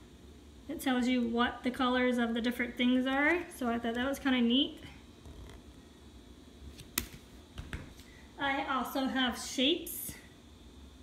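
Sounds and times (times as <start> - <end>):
sharp click of board book: 6.8 - 7.9.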